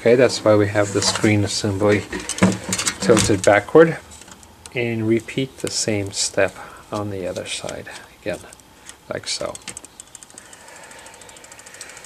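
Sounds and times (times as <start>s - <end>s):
camera zoom motor ticking: 9.8s - 12.0s.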